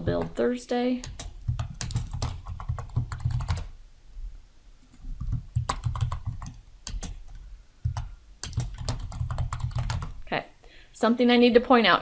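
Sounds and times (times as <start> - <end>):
keyboard typing clicks: 1.0 - 3.7, 5.2 - 10.2.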